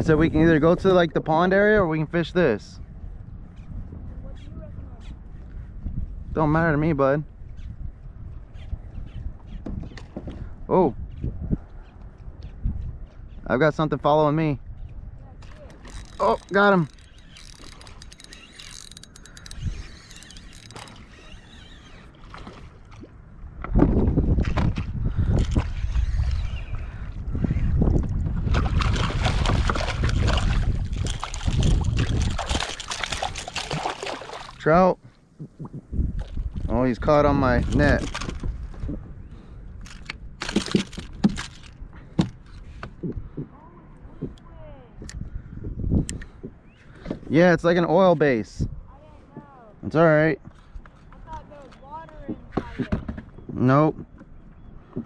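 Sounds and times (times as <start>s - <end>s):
wind rumble on microphone: 0.0s - 55.0s
fishing reel clicking: 15.7s - 22.2s
water splashing: 20.4s - 23.2s, 28.4s - 36.4s.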